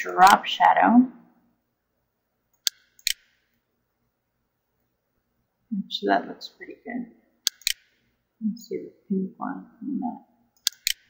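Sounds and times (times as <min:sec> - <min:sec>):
computer mouse clicking: 0:02.5 - 0:03.4, 0:07.5 - 0:07.9, 0:10.6 - 0:11.0.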